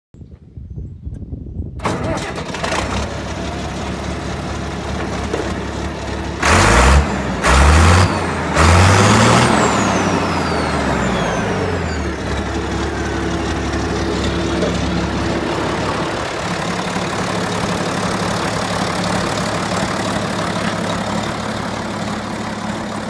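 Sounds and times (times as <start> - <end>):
diesel tractor engine revving: 1.8 - 23.0.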